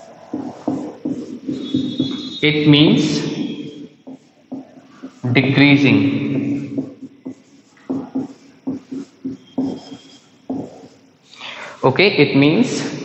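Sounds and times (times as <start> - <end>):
marker writing on whiteboard: 0.0 - 13.0
marker tip squeak: 0.4 - 5.3, 6.5 - 11.0.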